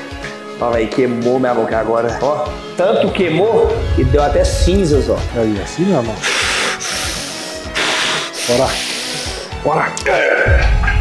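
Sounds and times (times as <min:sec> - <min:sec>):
background music: 0:00.0 - 0:11.0
forceful hissing breaths: 0:06.1 - 0:09.6.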